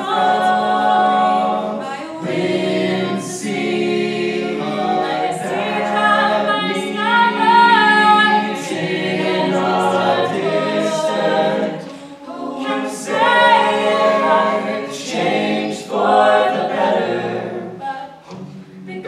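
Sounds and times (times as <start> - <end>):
a cappella group singing harmony: 0.0 - 19.0.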